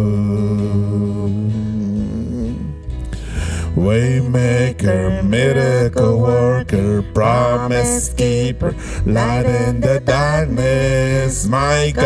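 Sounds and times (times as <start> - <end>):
man singing: 0.0 - 2.8, 3.4 - 12.0
bass and guitar: 0.0 - 12.0
woman singing: 5.3 - 12.0.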